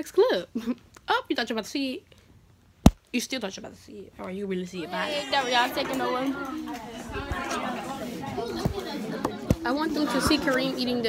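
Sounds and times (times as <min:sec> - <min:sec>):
voices chattering: 0:04.7 - 0:11.0.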